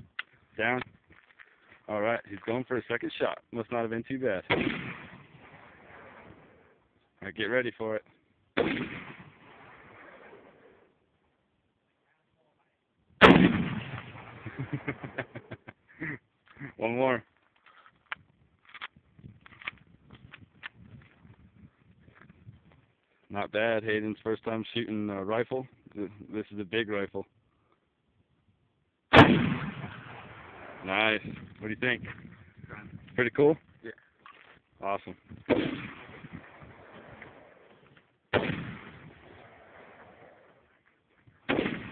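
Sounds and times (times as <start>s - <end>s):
rifle shot with echo: 4.4s - 6.7s, 8.6s - 10.9s, 13.2s - 15.1s, 29.1s - 31.4s, 35.4s - 40.6s, 41.4s - 41.9s.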